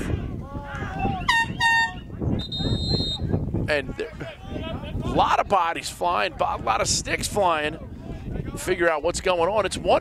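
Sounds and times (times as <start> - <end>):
air horn blasts: 1.3 - 3.0.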